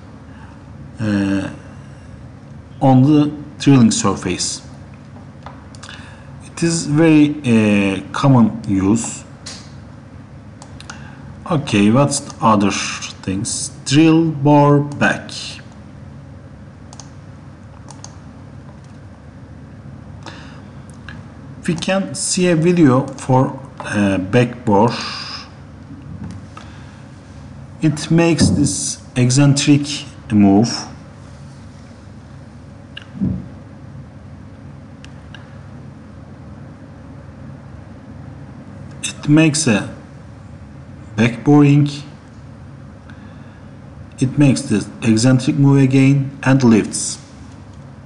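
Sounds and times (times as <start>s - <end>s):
low background hum: 0.0s - 48.0s
computer mouse clicks: 16.9s - 17.2s, 17.8s - 18.2s
low thump: 28.4s - 28.7s, 33.2s - 33.6s.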